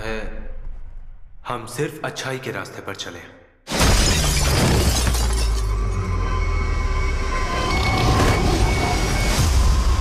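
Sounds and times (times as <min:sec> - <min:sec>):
glass shattering: 0:03.7 - 0:06.0
dramatic trailer music: 0:05.5 - 0:10.0.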